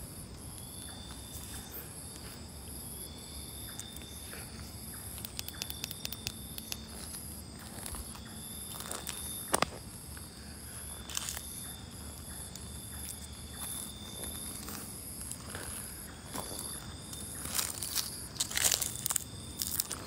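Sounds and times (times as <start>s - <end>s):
night insects chirping: 0.0s - 20.0s
light clicks and crackles: 5.1s - 8.1s.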